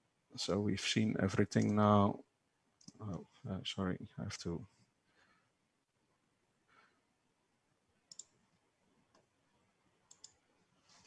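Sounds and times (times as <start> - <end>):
faint computer mouse clicks: 8.1 - 8.4, 10.1 - 10.4.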